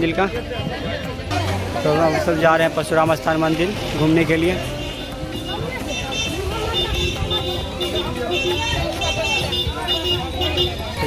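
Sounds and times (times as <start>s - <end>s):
vehicle noise: 0.0s - 11.0s.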